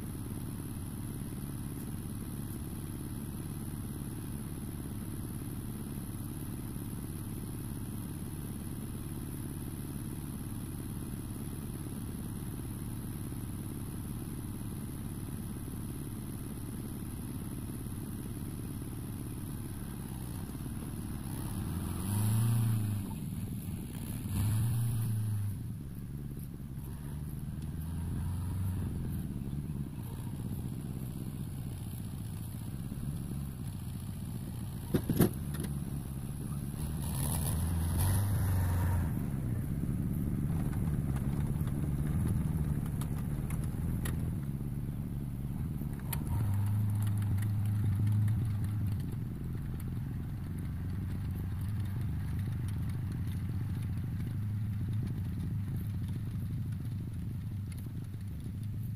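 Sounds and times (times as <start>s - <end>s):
tractor diesel engine running: 0.0s - 58.9s.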